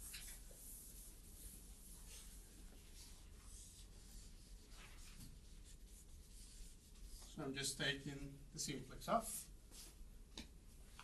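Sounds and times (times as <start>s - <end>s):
chalk scratching on chalkboard: 0.0s - 7.4s.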